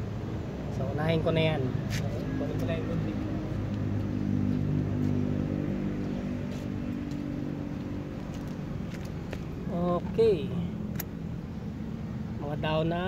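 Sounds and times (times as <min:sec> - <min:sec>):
vehicle engine running: 0:02.0 - 0:12.8.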